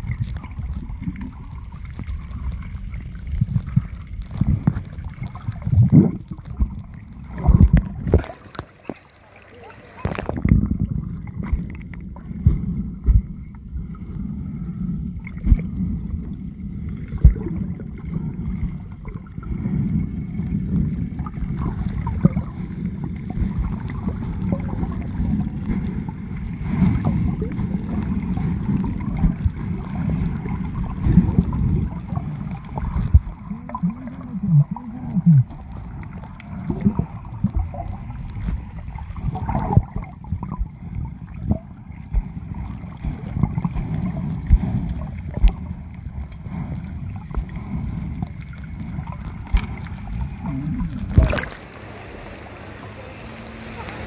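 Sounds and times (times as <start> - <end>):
muffled pitch-gliding sounds: 0.0 - 54.0
water sloshing and gurgling: 0.0 - 54.0
muffled knocks underwater: 3.3 - 9.1, 10.0 - 13.6, 16.9 - 18.0, 20.8 - 52.7.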